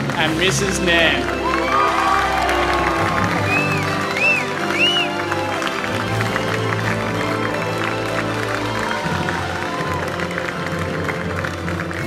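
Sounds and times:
crowd clapping and cheering: 0.0 - 12.0
music playing: 0.0 - 12.0.

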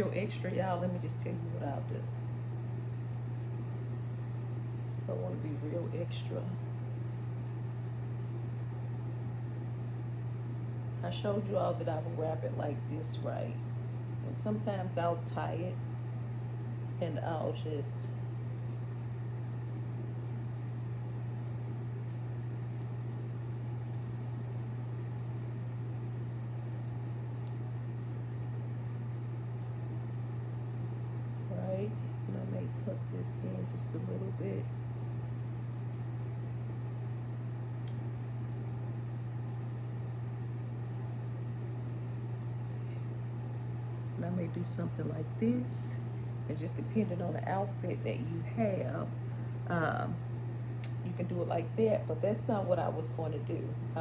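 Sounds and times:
air conditioner humming: 0.0 - 54.0.

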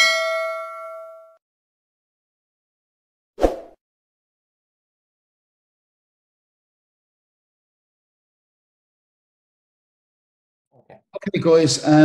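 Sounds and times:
notification bell chime: 0.0 - 1.4.

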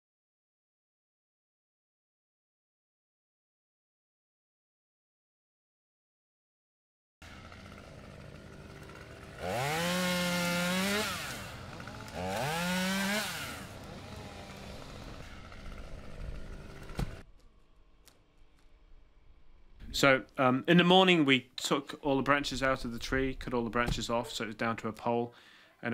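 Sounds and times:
chainsaw idling and revving: 7.2 - 17.3.

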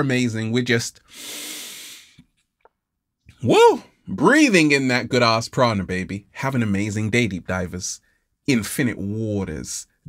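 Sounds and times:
man inhaling deeply: 1.0 - 2.2.

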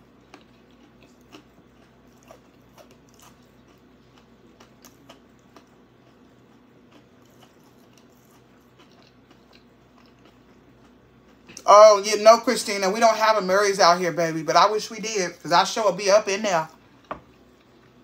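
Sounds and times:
close-up chewing with crunches: 0.0 - 11.7, 16.8 - 18.0.

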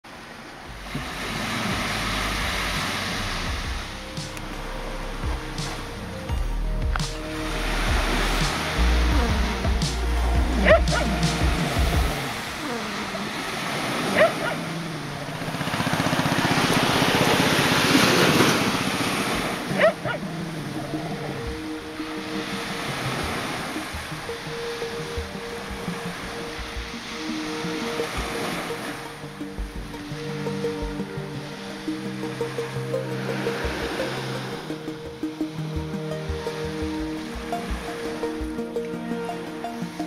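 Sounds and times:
surf washing on beach: 0.0 - 40.0
wind rumbling on microphone: 0.1 - 39.9.

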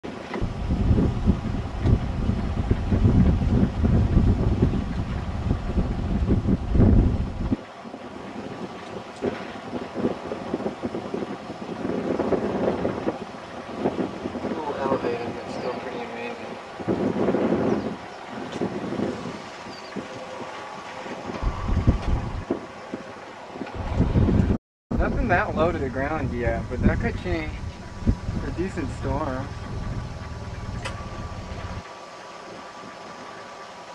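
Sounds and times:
wind buffeting microphone: 0.1 - 33.9
faint voices: 14.5 - 16.6.

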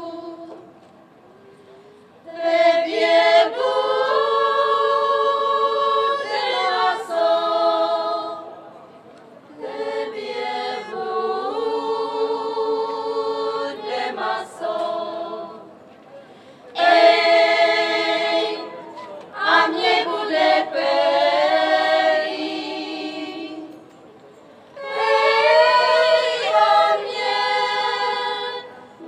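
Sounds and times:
women's choir singing a cappella: 0.0 - 0.7, 2.2 - 8.7, 9.5 - 15.8, 16.7 - 23.9, 24.7 - 29.0.

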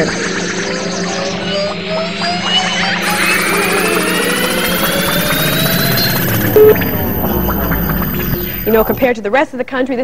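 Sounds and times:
loud low beep: 3.0 - 9.1.

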